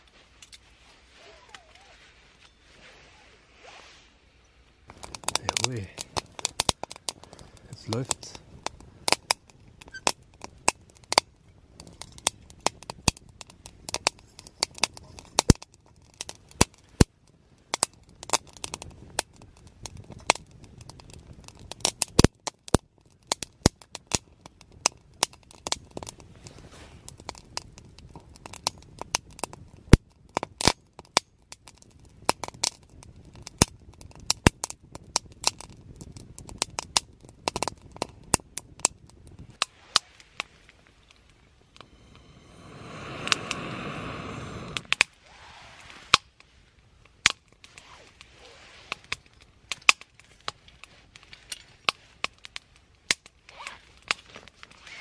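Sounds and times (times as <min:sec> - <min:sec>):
wood fire crackling: 0:00.0 - 0:02.6, 0:04.6 - 0:55.0.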